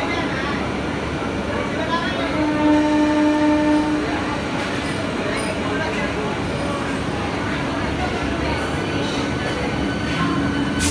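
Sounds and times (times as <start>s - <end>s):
station platform noise: 0.0s - 10.9s
train horn: 2.3s - 4.3s.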